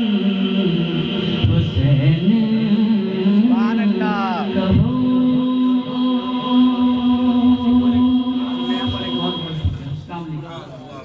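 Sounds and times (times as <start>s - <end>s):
steady drone note: 0.0s - 10.2s
voices chanting: 1.9s - 9.6s.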